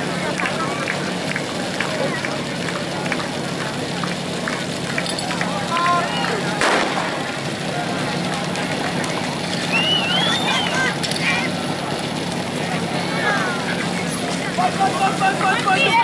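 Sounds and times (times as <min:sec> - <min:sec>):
engine drone: 0:00.0 - 0:16.0
spectators shouting and cheering: 0:00.0 - 0:16.0
pistol shot: 0:06.6 - 0:07.4.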